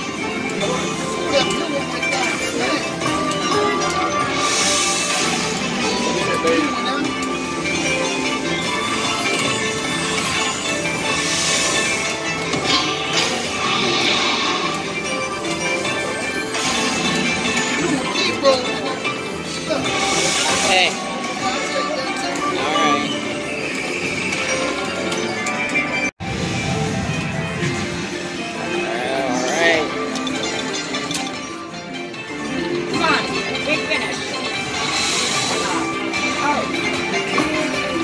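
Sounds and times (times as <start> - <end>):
slot machine bonus music: 0.0 - 38.0
slot machine reels spinning: 0.0 - 38.0.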